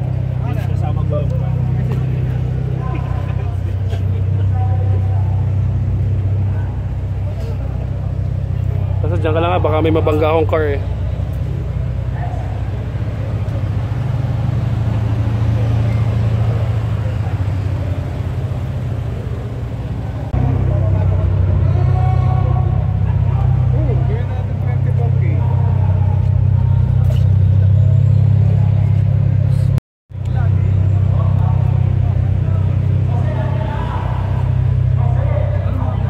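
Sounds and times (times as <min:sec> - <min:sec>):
car engines idling: 0:00.0 - 0:36.0
people chattering: 0:00.0 - 0:36.0.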